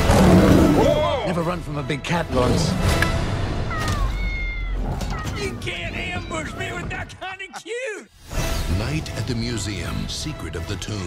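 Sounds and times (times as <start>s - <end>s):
cat-like meow: 3.0s - 5.4s.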